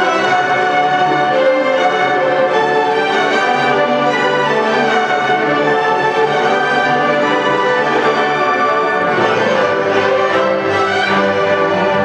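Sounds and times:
orchestra playing: 0:00.0 - 0:12.0.

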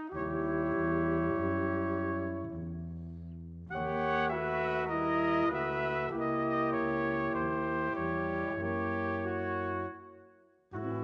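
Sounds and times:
brass quintet playing chords: 0:00.0 - 0:02.8, 0:03.7 - 0:11.0.

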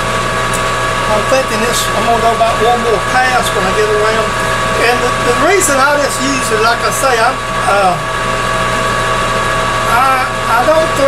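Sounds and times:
lathe motor hum: 0:00.0 - 0:11.0
whining gear tones: 0:00.0 - 0:11.0.

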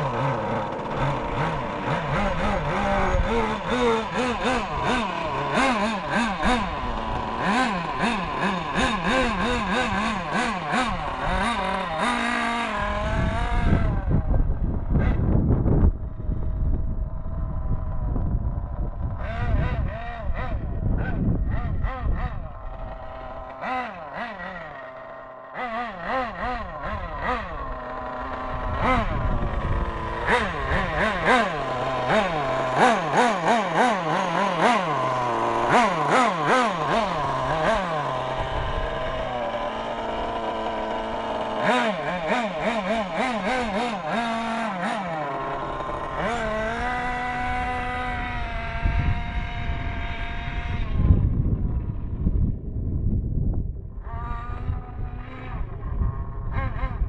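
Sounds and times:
model buggy engine running: 0:00.0 - 0:57.0.

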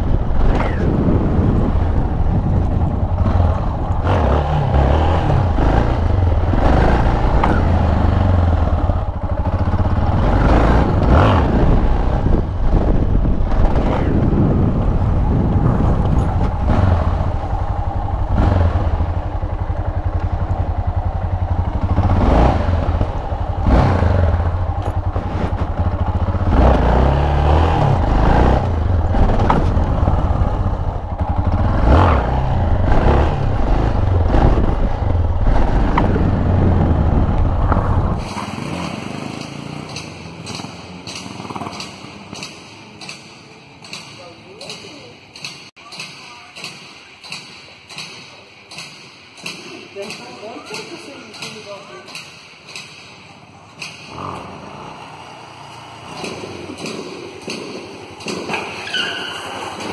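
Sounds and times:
wind on microphone: 0:00.0 - 0:38.4
motorcycle engine revving: 0:00.0 - 0:45.6, 0:48.0 - 0:59.9.

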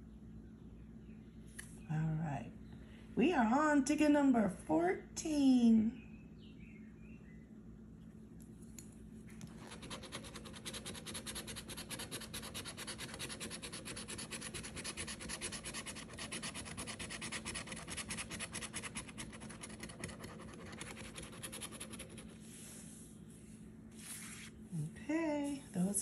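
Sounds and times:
coin scratching lottery ticket: 0:09.5 - 0:22.4.

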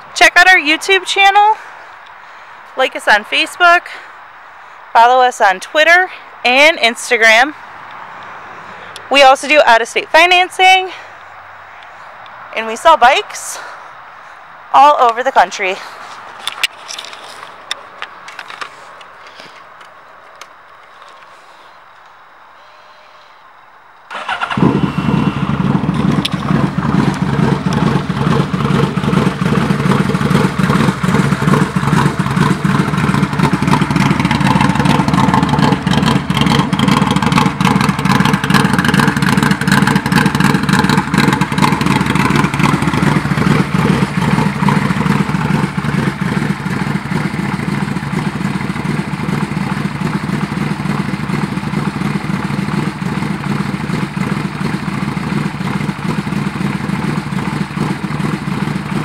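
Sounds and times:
loud engine running: 0:24.1 - 0:59.0.

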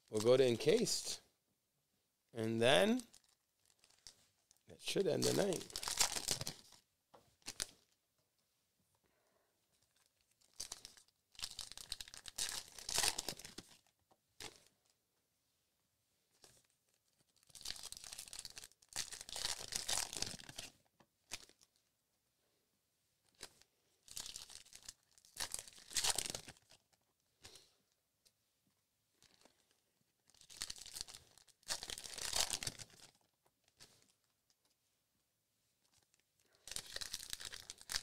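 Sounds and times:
card pack wrappers tearing and crinkling: 0:04.9 - 0:06.7, 0:10.5 - 0:13.8, 0:17.4 - 0:20.7, 0:24.2 - 0:26.8, 0:30.3 - 0:33.2, 0:36.6 - 0:38.0.

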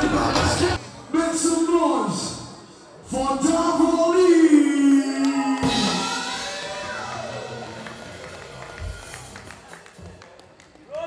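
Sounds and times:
live band music: 0:05.6 - 0:10.2.

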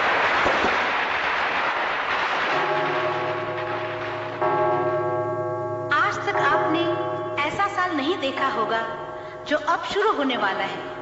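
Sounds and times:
fireworks crackling and hissing: 0:00.0 - 0:04.4.

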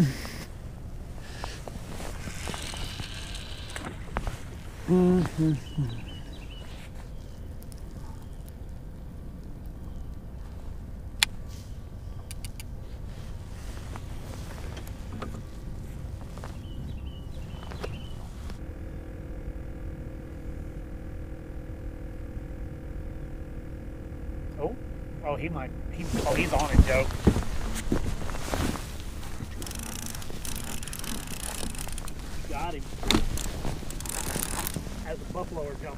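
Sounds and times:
low steady outdoor rumble: 0:00.0 - 0:35.9
mechanical hum of held tones: 0:00.0 - 0:35.9
sharp clicks: 0:12.2 - 0:12.7, 0:29.0 - 0:32.2.

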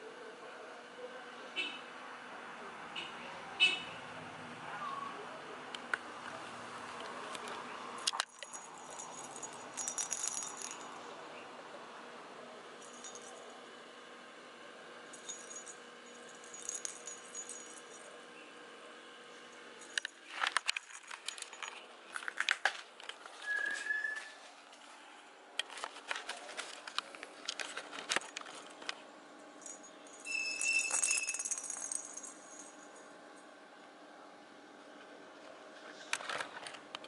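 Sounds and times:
bell jingling in toy ball: 0:08.3 - 0:11.0, 0:15.1 - 0:18.0, 0:29.6 - 0:32.9.

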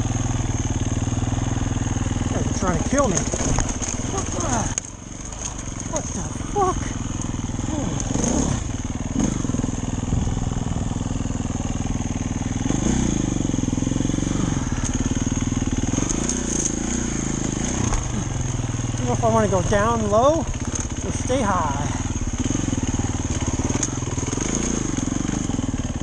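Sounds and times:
dirt bike engine revving: 0:00.0 - 0:26.0.

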